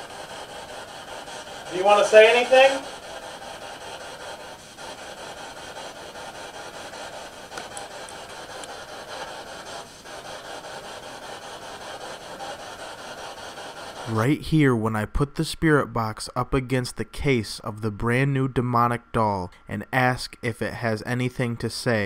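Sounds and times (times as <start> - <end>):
radio static hiss: 1.7 - 3.0.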